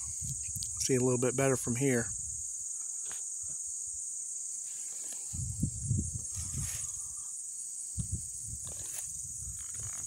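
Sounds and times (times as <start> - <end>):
insects chorus: 0.0 - 10.0.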